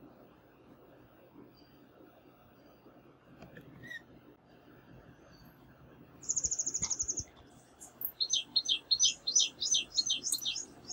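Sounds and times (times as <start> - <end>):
bird chirping: 6.2 - 10.9.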